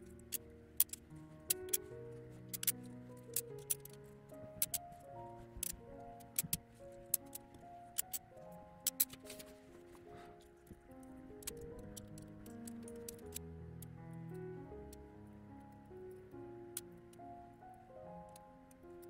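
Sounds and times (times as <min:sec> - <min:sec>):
soft background music: 0:00.0 - 0:19.0
glass squares clicking on glass: 0:02.5 - 0:04.0.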